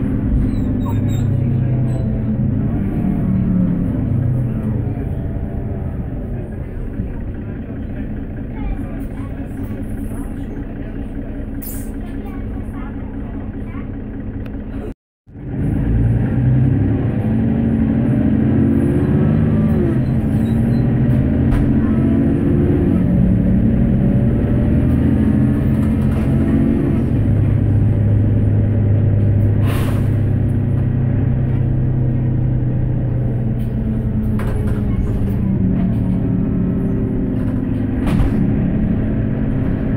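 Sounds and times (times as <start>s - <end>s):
bus diesel engine: 0.0s - 39.9s.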